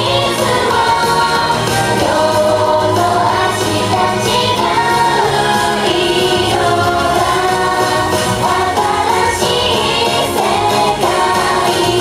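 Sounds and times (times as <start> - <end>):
backing music through speakers: 0.0 - 12.0
women singing pop song: 0.0 - 12.0.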